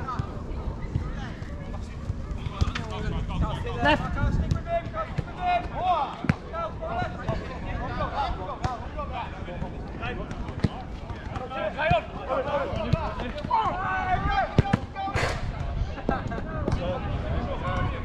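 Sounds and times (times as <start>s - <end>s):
players calling out: 10.4s - 16.1s.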